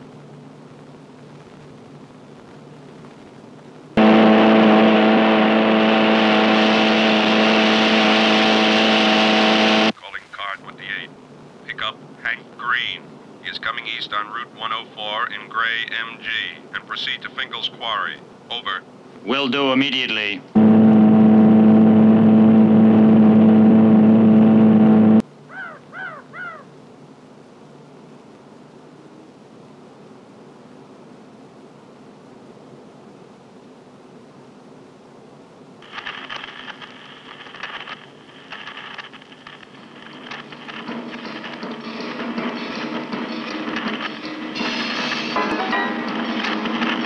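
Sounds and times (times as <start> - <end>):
low quiet hum: 0.0 - 7.5, 9.7 - 44.4
film soundtrack music: 40.7 - 47.0.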